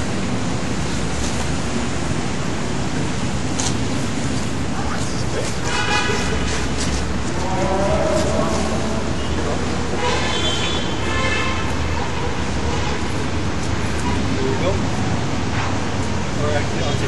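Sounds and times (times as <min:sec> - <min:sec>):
outdoor background rush: 0:00.0 - 0:17.0.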